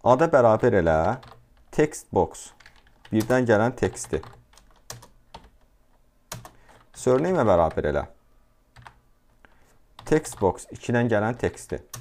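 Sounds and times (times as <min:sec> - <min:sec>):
computer keyboard keystrokes: 0:01.0 - 0:01.7, 0:02.5 - 0:05.7, 0:06.3 - 0:07.8, 0:11.4 - 0:12.0.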